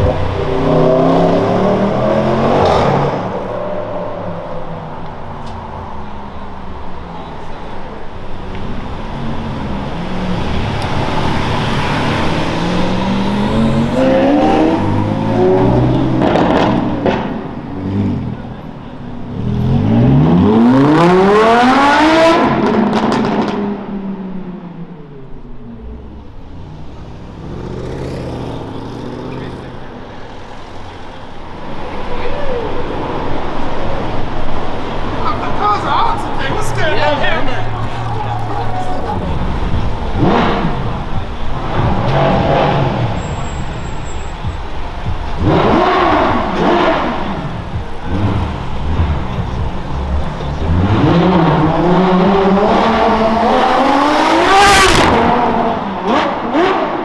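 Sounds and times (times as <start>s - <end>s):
car engines accelerating hard: 0.0s - 57.0s.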